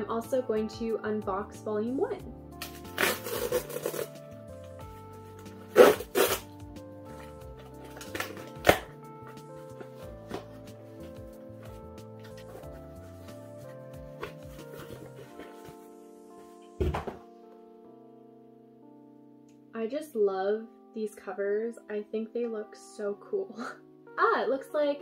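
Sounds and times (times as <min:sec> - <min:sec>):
soft background music: 0:00.0 - 0:25.0
cardboard mailer tearing: 0:02.6 - 0:04.2, 0:05.7 - 0:06.5
cardboard crackle: 0:02.8 - 0:04.1, 0:12.2 - 0:15.8.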